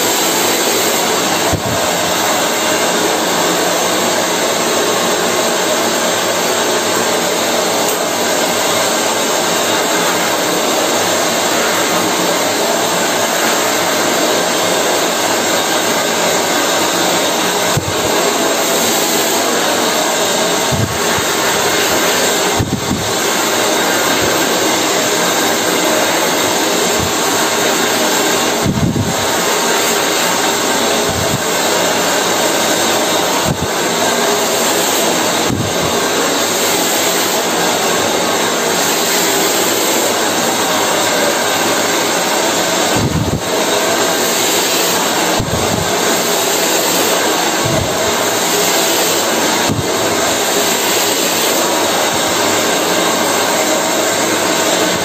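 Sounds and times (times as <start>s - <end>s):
hair dryer blowing: 0.0s - 55.0s.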